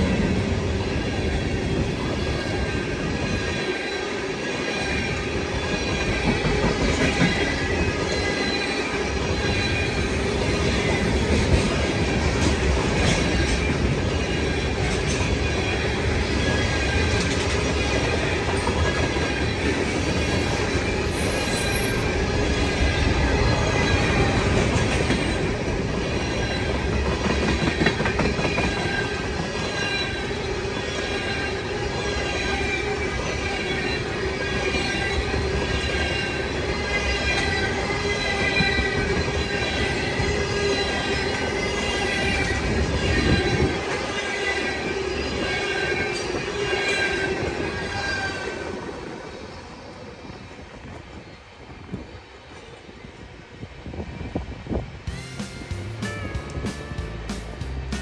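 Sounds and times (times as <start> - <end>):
freight train rolling past: 0.0 - 58.0.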